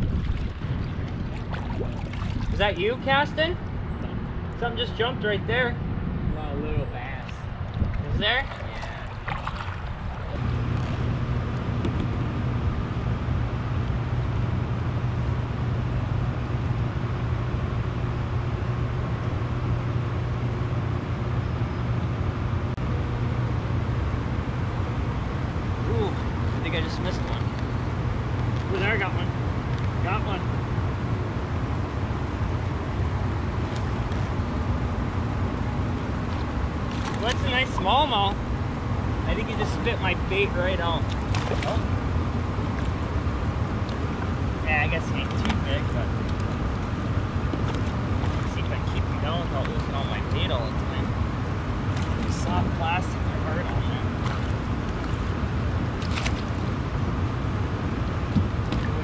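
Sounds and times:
low mechanical hum with rushing: 0:00.0 - 0:59.0.

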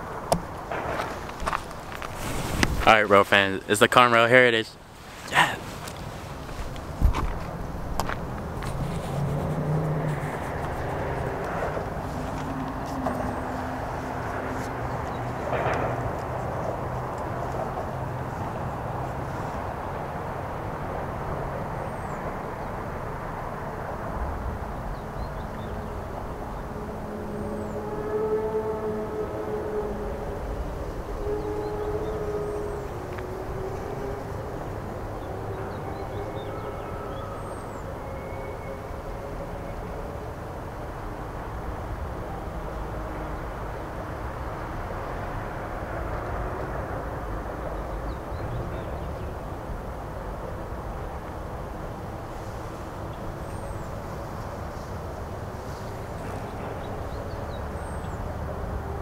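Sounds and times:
freight train rumbling: 0:00.0 - 0:59.0
outdoor ambience: 0:00.0 - 0:59.0.

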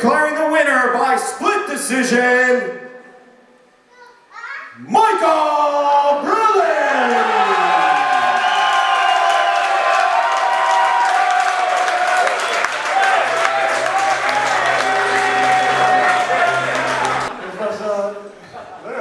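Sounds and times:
crowd cheering and applauding: 0:07.0 - 0:17.3
music playing: 0:12.8 - 0:17.3.

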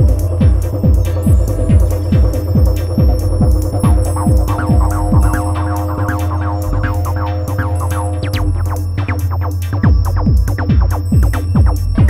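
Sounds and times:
kick drum: 0:00.0 - 0:07.2, 0:09.8 - 0:12.0
held synth drone: 0:00.0 - 0:12.0
hi-hats: 0:00.0 - 0:12.0.

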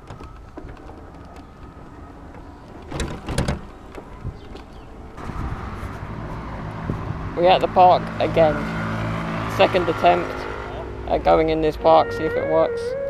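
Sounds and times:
small vehicle rolling on road: 0:00.0 - 0:13.0.

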